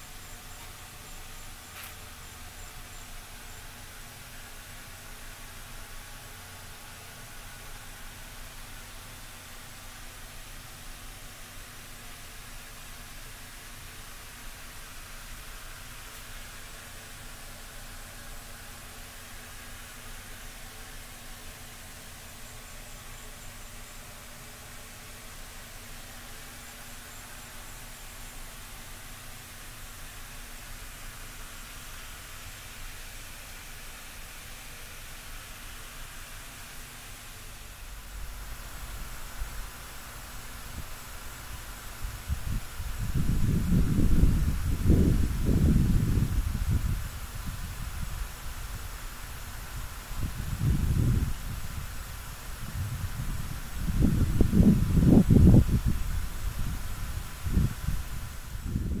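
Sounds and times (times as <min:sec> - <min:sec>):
wind buffeting microphone: 0:42.1 - 0:48.2, 0:50.1 - 0:52.0, 0:52.6 - 0:59.0.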